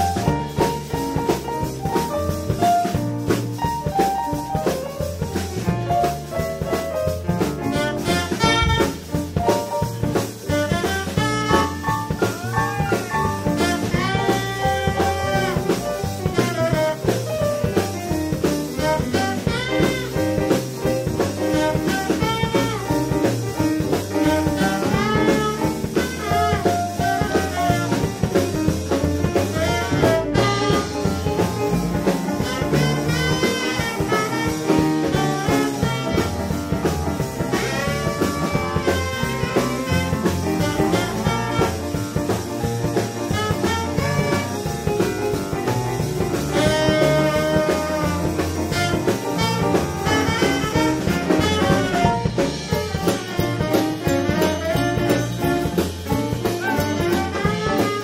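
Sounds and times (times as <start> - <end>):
swing jazz band playing: 0.0 - 58.0
tenor saxophone melody: 7.6 - 58.0.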